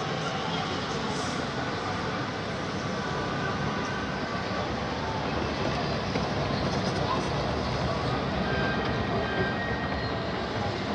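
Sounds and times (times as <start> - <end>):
busy hall background noise: 0.0 - 10.9.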